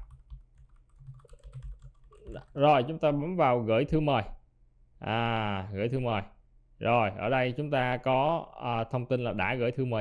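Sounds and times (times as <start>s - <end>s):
computer keyboard typing: 0.0s - 2.6s.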